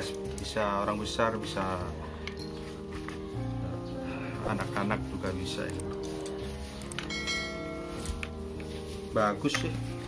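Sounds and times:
background music: 0.0s - 10.0s
bright bell chime: 7.0s - 8.5s.

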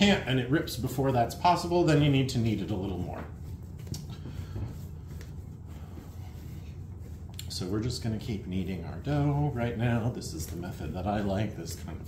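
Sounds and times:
dough kneaded on countertop: 0.0s - 12.0s
low steady hum: 0.0s - 12.0s.

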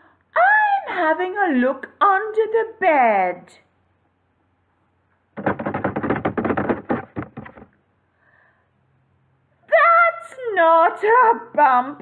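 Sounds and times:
rapid clicking taps: 5.4s - 7.7s.

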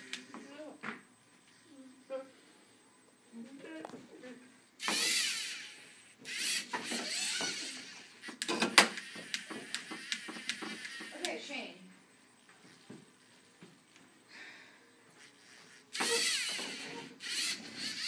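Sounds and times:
robot servo motors whirring: 4.8s - 11.4s, 15.9s - 18.0s.

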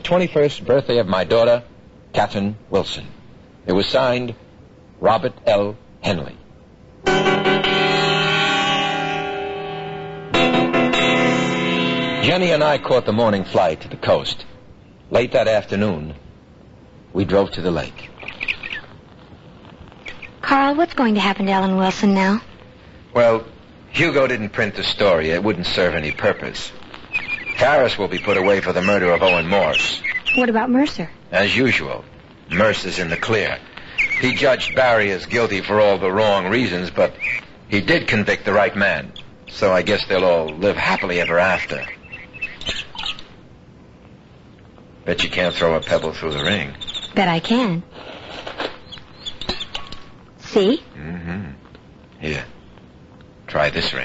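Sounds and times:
faint steady hiss: 0.0s - 54.0s
high-pitched chirps: 7.1s - 14.4s, 27.1s - 30.6s
bird chirps: 18.0s - 19.0s, 20.0s - 20.4s, 27.1s - 30.7s, 32.5s - 35.0s, 37.1s - 37.4s, 40.3s - 43.3s, 45.2s - 47.3s, 48.8s - 50.0s.

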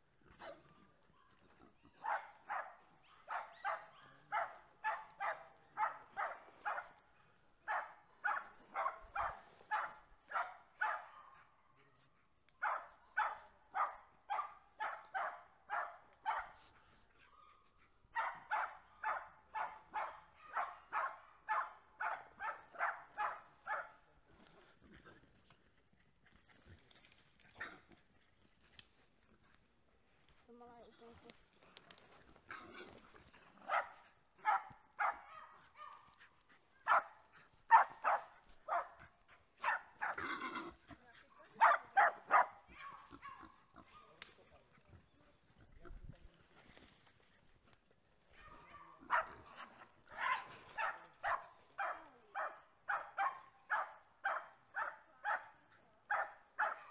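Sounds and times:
small dog barking: 0.3s - 7.0s, 7.6s - 12.0s, 12.6s - 16.6s, 17.2s - 24.0s, 33.6s - 40.5s, 41.4s - 44.2s, 48.4s - 56.9s.

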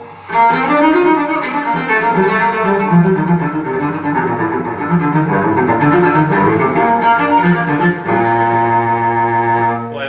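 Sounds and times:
low bowed cello note: 0.0s - 10.0s.

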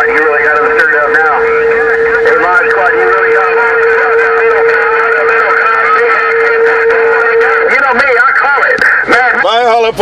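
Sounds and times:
garbled radio voice: 0.0s - 10.0s.

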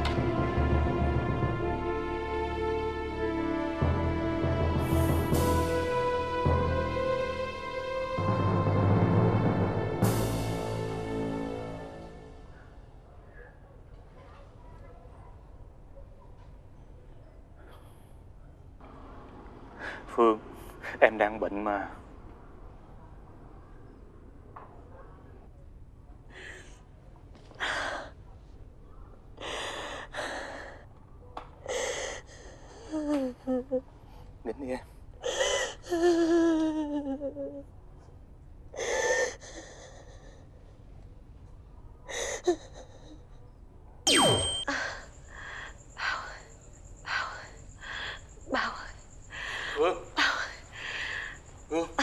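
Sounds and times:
woman sobbing: 32.7s - 33.9s, 35.2s - 37.7s, 42.1s - 43.3s.

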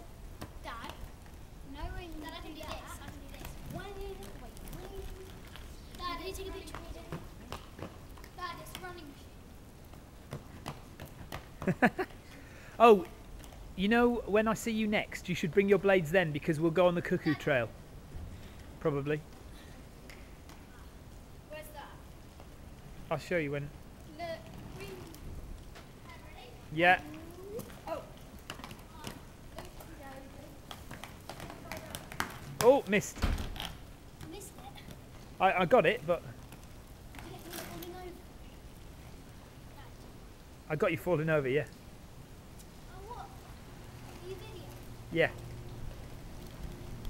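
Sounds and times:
skate wheels clicking on paving: 0.0s - 40.2s, 40.8s - 47.0s
skates clicking and knocking: 0.3s - 9.2s, 9.9s - 12.2s, 27.0s - 38.2s
child's high voice: 1.7s - 7.5s, 8.4s - 9.4s, 24.1s - 25.2s, 26.1s - 29.2s, 37.2s - 38.3s, 42.9s - 43.4s, 44.1s - 44.8s.

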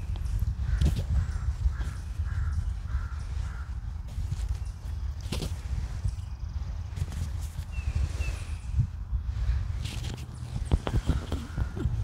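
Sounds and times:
steady low rumble: 0.0s - 12.0s
distant crow cawing: 0.6s - 4.0s, 10.9s - 12.0s.

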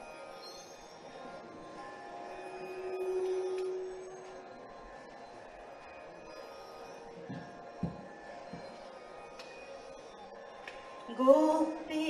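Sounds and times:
faint steady drone: 0.0s - 12.0s
violin long note: 2.4s - 4.9s.

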